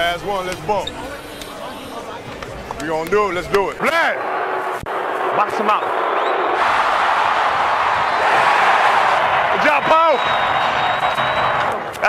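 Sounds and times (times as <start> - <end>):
crowd cheering: 3.8 - 12.0.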